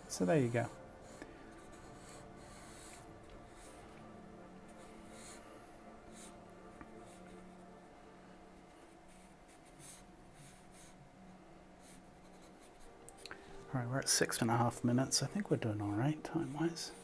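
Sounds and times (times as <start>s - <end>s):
low room hum: 0.0s - 17.0s
charcoal pencil scratching paper: 0.5s - 3.8s, 9.1s - 11.0s, 11.8s - 12.9s.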